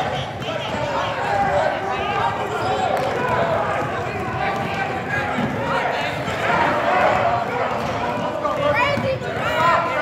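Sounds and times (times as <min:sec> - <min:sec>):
spectators shouting in gymnasium: 0:00.0 - 0:10.0.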